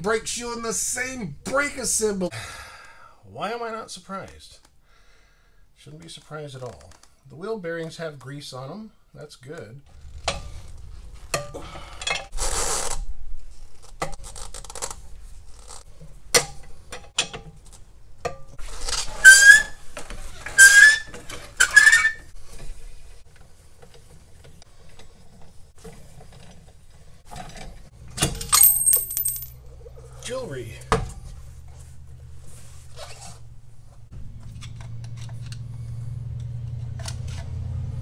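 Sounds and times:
loud squeaks: 0:18.8 - 0:22.3
metal tools clinking and scraping: 0:28.3 - 0:30.1
ringing metal clink: 0:28.4 - 0:29.6.

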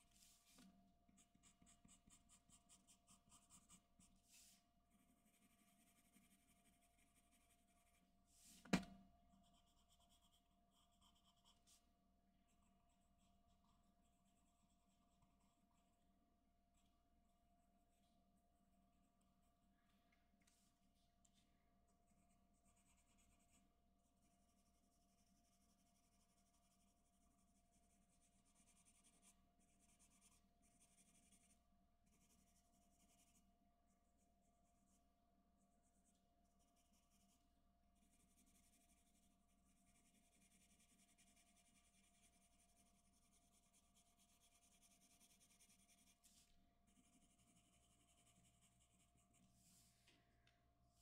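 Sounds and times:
pencil scratching on paper: 0:00.0 - 0:08.6, 0:09.4 - 0:11.9, 0:22.1 - 0:33.4, 0:35.8 - 0:37.4, 0:38.0 - 0:50.0.

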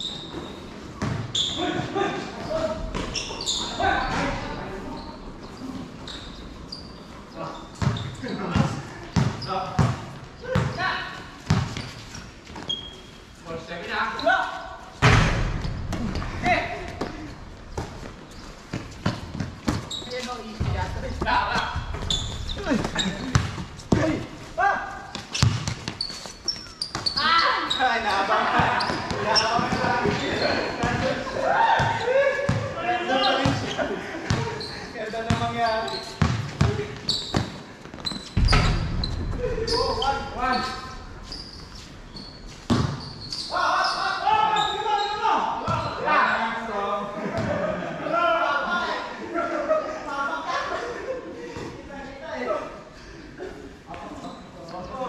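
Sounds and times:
players shouting: 0:27.2 - 0:33.7.

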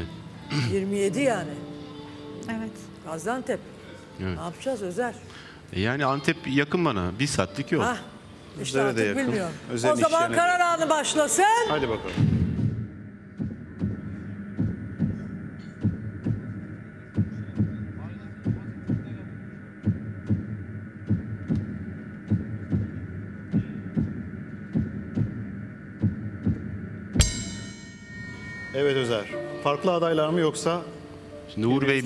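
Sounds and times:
heartbeat-like thumps: 0:12.2 - 0:27.8
sharp hit with ringing tones: 0:27.2 - 0:29.7.

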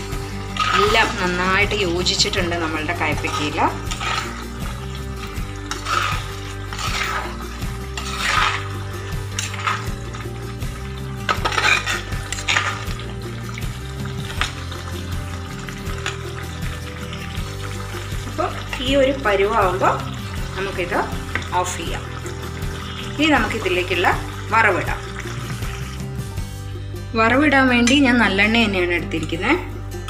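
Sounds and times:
masala bubbling: 0:00.0 - 0:26.5
background music: 0:00.0 - 0:30.0
spoon scraping in a pan: 0:00.1 - 0:01.4, 0:02.9 - 0:13.2.

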